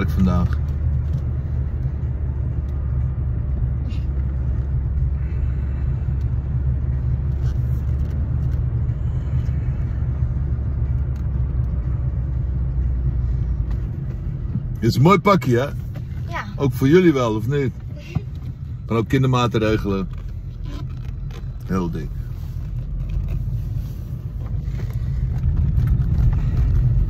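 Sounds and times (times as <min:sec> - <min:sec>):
car interior engine rumble: 0:00.0 - 0:27.0.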